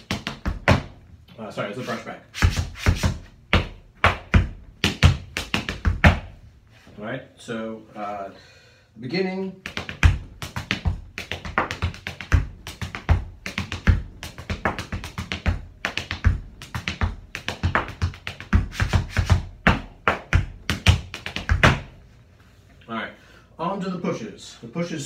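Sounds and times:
tap shoes striking a board: 0.0 - 0.9, 2.4 - 6.3, 9.6 - 21.9.

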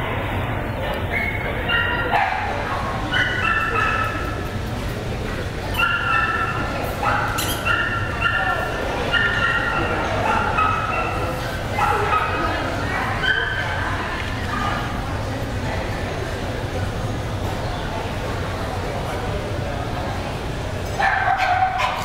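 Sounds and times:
crowd murmur in a large hall: 0.0 - 22.0.

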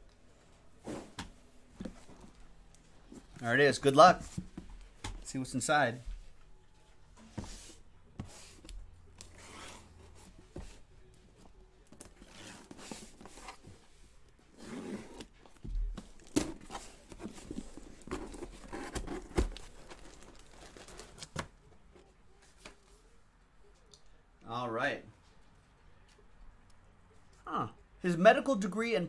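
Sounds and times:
packaging crinkling: 17.4 - 21.5.

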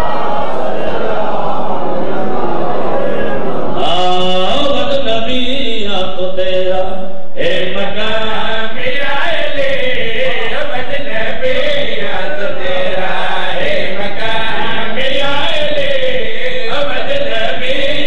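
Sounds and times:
man chanting over loudspeaker: 2.9 - 18.0.

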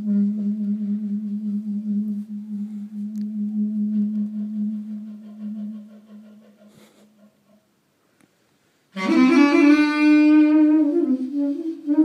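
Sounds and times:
clarinet long low note: 0.0 - 6.0, 9.0 - 12.0.

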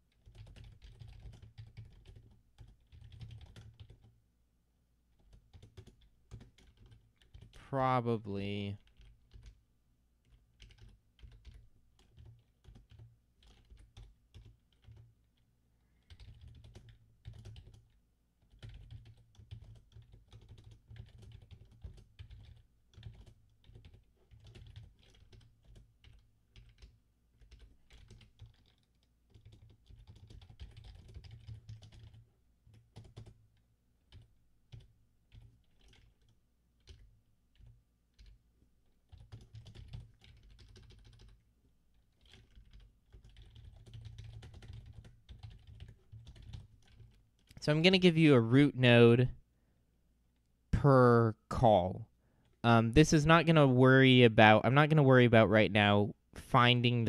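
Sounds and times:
computer keyboard typing: 0.1 - 4.1, 5.2 - 7.6, 8.7 - 9.6, 10.2 - 47.6.

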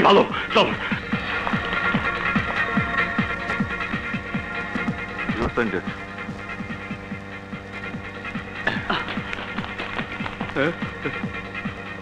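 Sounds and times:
electronic drone: 0.4 - 12.0.

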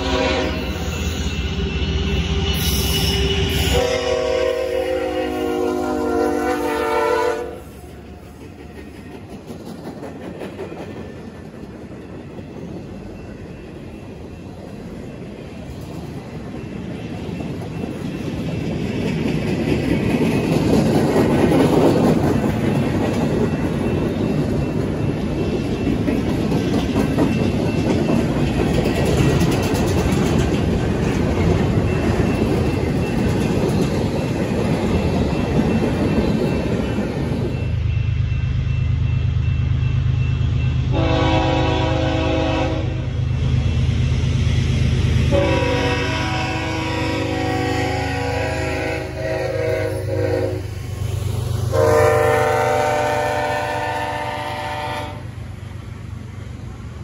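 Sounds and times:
train horn chord: 0.0 - 0.9, 3.0 - 7.8, 40.9 - 43.2, 45.3 - 50.7, 51.7 - 55.3
train rumble: 0.0 - 57.0
train wheels clickety-clack: 5.0 - 57.0.

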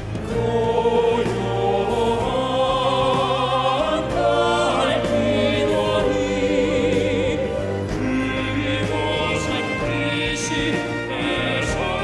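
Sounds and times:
male vocal group singing: 0.1 - 12.0.

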